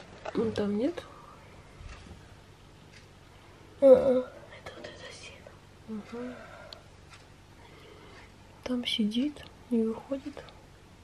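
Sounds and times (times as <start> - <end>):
person whispering: 4.5 - 6.4.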